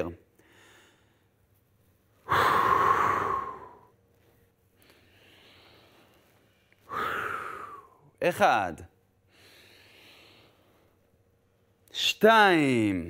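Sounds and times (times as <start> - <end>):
faint breath in: 0.4 - 1.4, 4.8 - 8.0, 9.3 - 11.0
person exhaling through the mouth: 2.2 - 3.9, 6.9 - 8.0.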